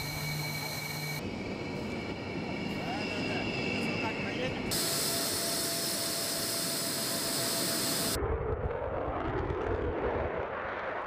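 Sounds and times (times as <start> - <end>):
faint steady whine: 0.0 - 8.2
jet engines running: 0.0 - 11.0.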